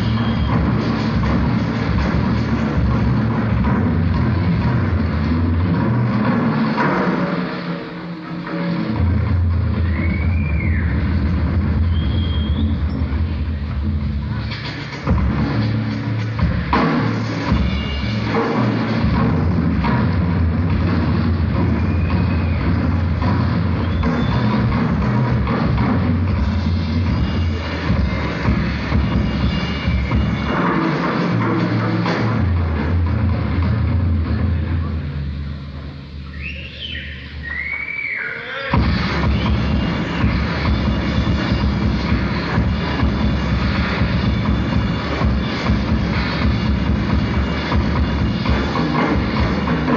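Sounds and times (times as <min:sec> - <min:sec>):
sliding electronic whistle tones: 0:00.0 - 0:00.7, 0:11.8 - 0:13.0, 0:36.2 - 0:40.4
muffled live rock band: 0:00.0 - 0:49.9
drum hit: 0:38.8 - 0:49.9.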